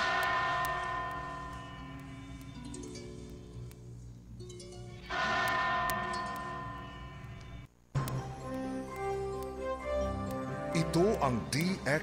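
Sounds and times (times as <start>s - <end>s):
bell-like chime ringing: 0.0s - 2.7s, 5.1s - 7.7s
soft instrumental music: 8.0s - 12.0s.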